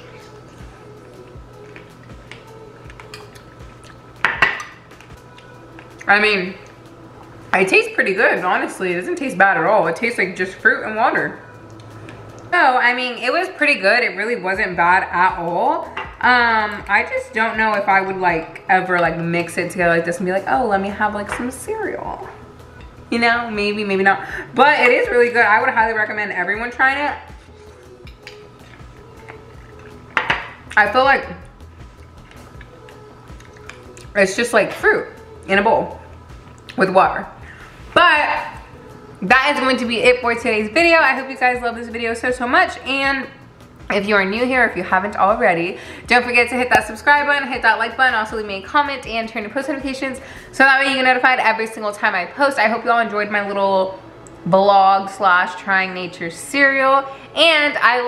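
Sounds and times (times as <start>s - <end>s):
spoon clinking glass bowl: 28.1s - 31.0s.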